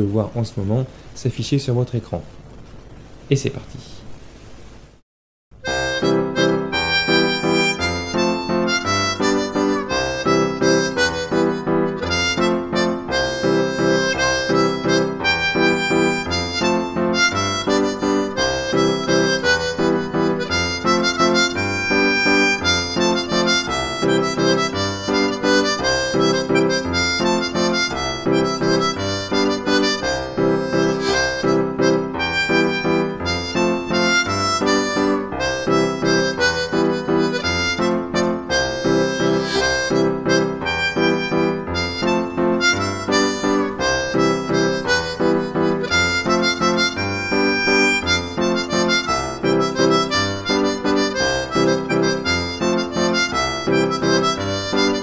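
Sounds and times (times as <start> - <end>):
harmonica playing folk tune: 5.6 - 55.0.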